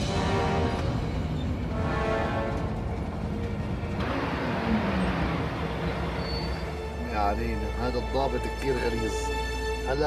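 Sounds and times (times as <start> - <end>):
car engine slowing: 2.4 - 9.8.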